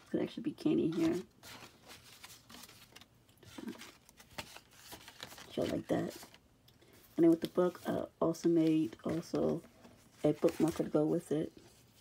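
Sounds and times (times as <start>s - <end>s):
paper rustling and tapping: 8.5s - 11.2s.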